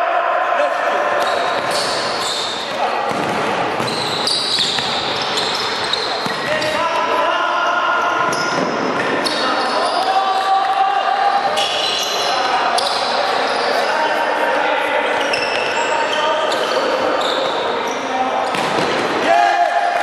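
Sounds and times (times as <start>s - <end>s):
shoes squeaking on court floor: 1.1s - 6.8s, 8.2s - 10.5s, 11.4s - 14.0s, 15.1s - 18.9s
sharp ball kicks: 3.1s - 4.0s
players shouting: 19.0s - 20.0s.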